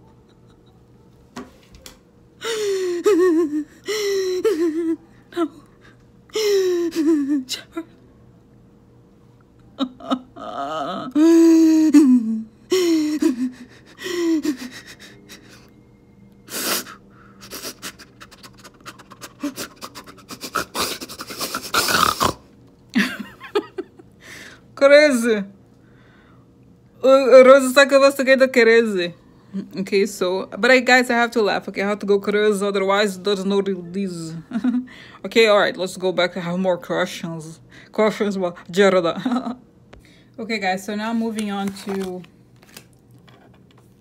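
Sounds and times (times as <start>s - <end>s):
woman mock crying: 2.4s - 5.7s, 6.3s - 8.0s, 9.8s - 15.6s
woman sobbing breaths: 2.4s - 7.5s, 10.4s - 15.7s, 34.8s - 35.2s
woman whimpering wail: 2.4s - 7.9s, 9.8s - 15.7s, 16.5s - 21.8s.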